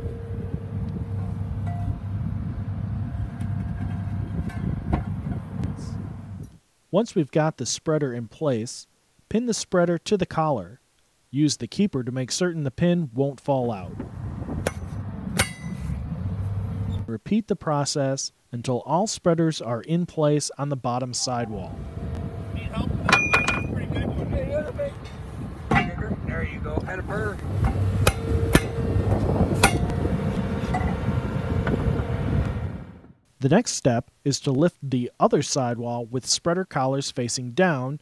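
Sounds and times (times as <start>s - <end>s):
low steady rumble: 0.0s - 6.6s, 13.8s - 17.1s, 21.1s - 33.2s
metal clanks ringing: 14.7s - 16.0s, 21.2s - 22.0s, 23.1s - 23.8s, 25.0s - 26.2s, 27.6s - 28.9s, 29.6s - 30.0s
metallic clink: 15.4s - 15.8s, 23.1s - 23.7s.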